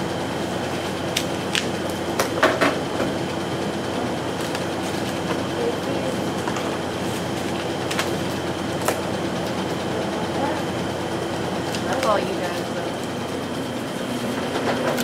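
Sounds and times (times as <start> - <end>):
machine hum: 0.0 - 15.0.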